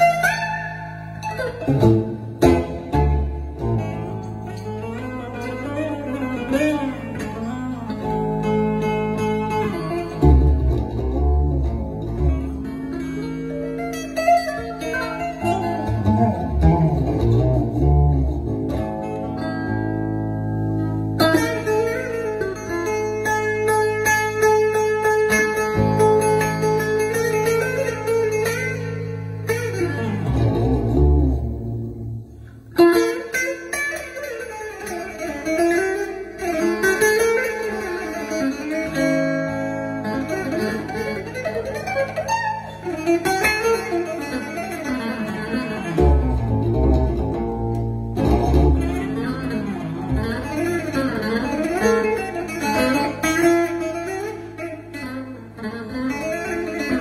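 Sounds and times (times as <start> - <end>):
plucked long-necked lute melody: 0.0 - 57.0.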